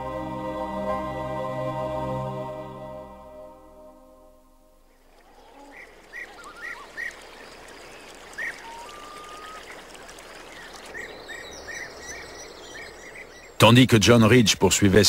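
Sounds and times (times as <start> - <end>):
birds chirping: 4.9 - 14.9
running water rushing: 5.0 - 14.1
bird whistle: 5.8 - 7.2, 8.4 - 9.6.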